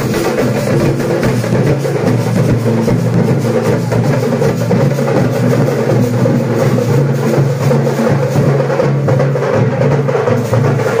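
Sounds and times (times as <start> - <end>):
fast drumming: 0.0 - 11.0.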